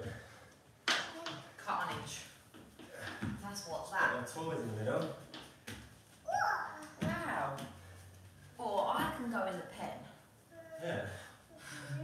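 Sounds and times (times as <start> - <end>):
toddler babbling: 6.3 - 7.0, 10.5 - 12.0.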